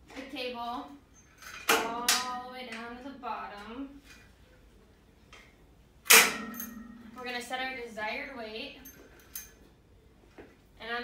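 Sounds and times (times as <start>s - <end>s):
loud metal clank with ringing: 6.1s - 7.5s.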